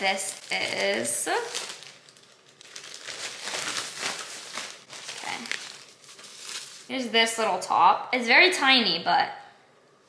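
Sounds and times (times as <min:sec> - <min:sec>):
plastic bag crinkling: 0:00.0 - 0:07.0.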